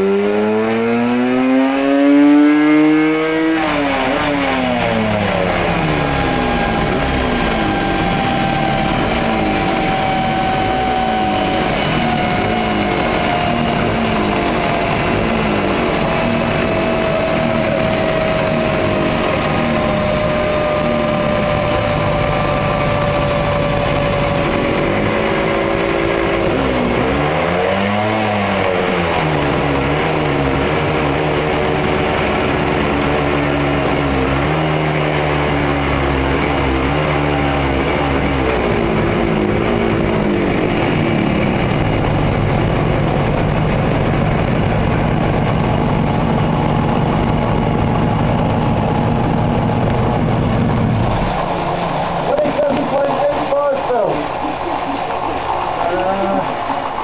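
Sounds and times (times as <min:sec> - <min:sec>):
two-stroke motorcycle engine revving: 0:00.0 - 0:57.0
whine falling in pitch: 0:00.0 - 0:57.0.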